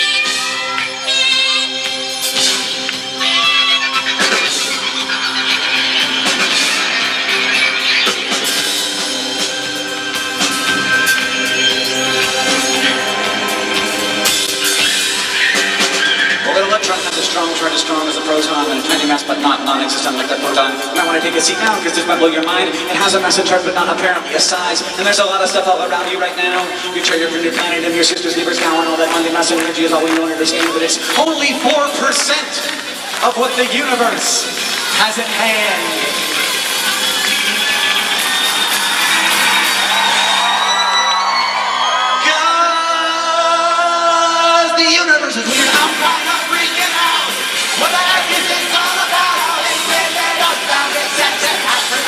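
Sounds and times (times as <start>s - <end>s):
live rock band playing: 0.0s - 42.2s, 45.3s - 52.0s
drum kit: 2.0s - 41.0s, 45.4s - 52.0s
man singing into a microphone: 42.3s - 52.0s.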